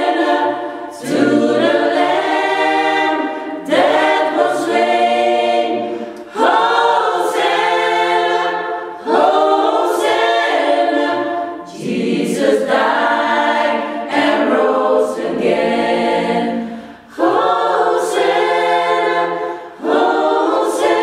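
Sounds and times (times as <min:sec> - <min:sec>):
choir singing a cappella: 0:00.0 - 0:21.0.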